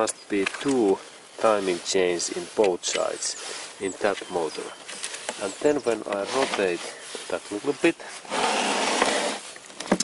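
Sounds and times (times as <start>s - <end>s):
engine block scraping: 0.7s - 9.6s.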